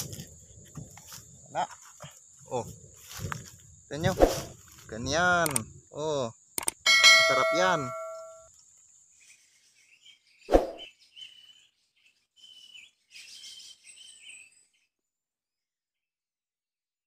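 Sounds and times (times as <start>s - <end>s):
faint bird chirps: 8.0s - 15.1s.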